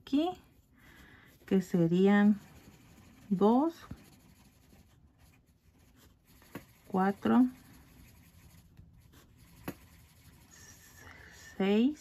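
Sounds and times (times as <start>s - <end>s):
pencil scratching on paper: 0.1s - 11.8s.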